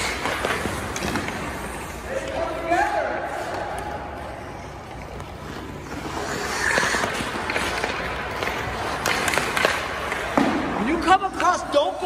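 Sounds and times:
hockey stick and puck clicks: 0.0 - 2.4, 4.8 - 11.9
ice skate blades scraping: 0.0 - 10.4.

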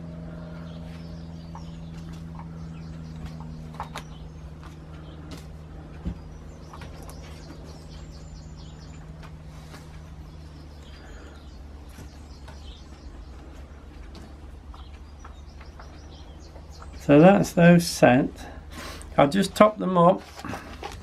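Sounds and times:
birds chirping: 0.0 - 21.0
low hum: 0.0 - 21.0.

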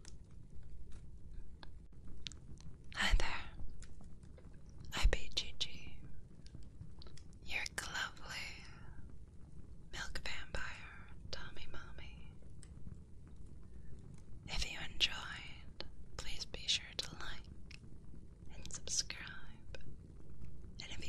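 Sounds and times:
person whispering close to microphone: 3.0 - 3.6, 4.9 - 6.1, 7.4 - 8.8, 9.9 - 12.3, 14.5 - 17.5, 18.5 - 19.8, 20.8 - 21.0.

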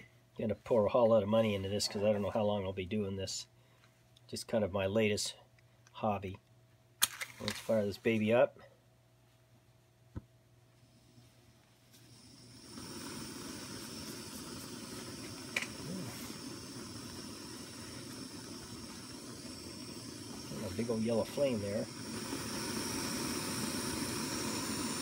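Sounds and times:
gas burner hissing: 10.8 - 25.0
stove ignition click: 15.1 - 15.8.

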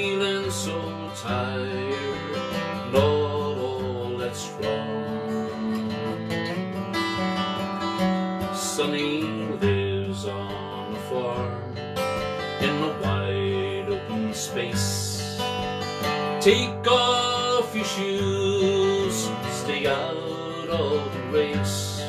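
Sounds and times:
acoustic guitar strummed: 0.0 - 22.0.

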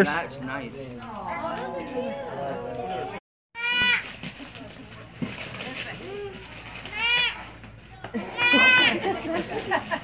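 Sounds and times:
people talking over each other: 0.0 - 3.2.

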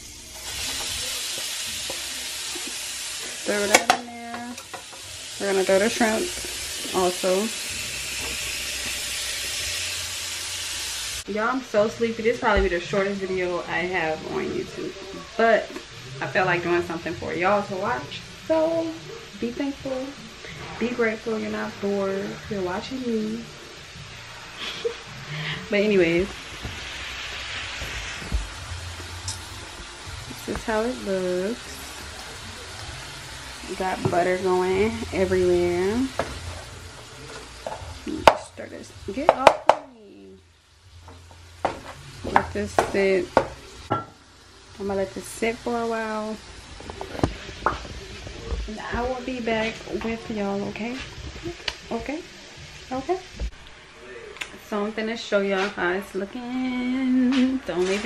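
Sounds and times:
food sizzling in a frying pan: 0.0 - 58.0
wooden spoon tapping a pan: 39.2 - 39.9, 41.1 - 44.1.

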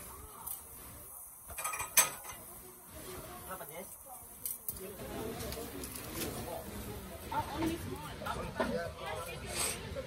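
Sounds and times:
low background murmur: 0.0 - 10.0
people talking indistinctly: 0.0 - 10.0.

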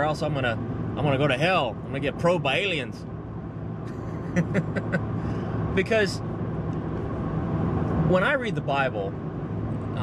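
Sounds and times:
car engine and road noise: 0.0 - 10.0
person laughing: 3.9 - 5.1.

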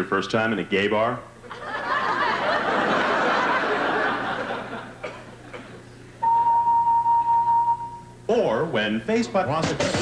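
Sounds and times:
steady electronic beep: 6.2 - 8.2.

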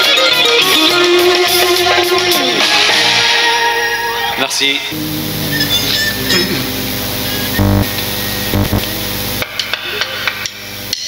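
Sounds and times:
live concert music: 0.0 - 8.9.

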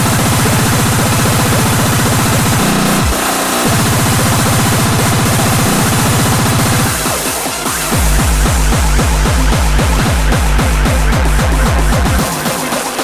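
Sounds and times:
distorted kick drums: 0.0 - 13.0.

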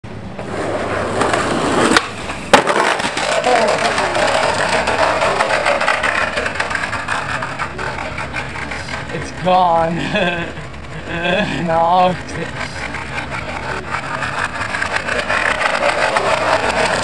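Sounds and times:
skateboard wheels rolling on paving: 0.1 - 17.0.

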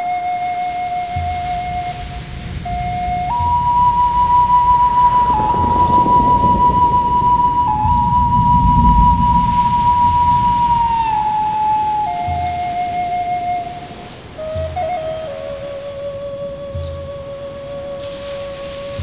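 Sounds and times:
flute playing long notes: 0.0 - 19.0
low musical accompaniment: 0.0 - 19.0.

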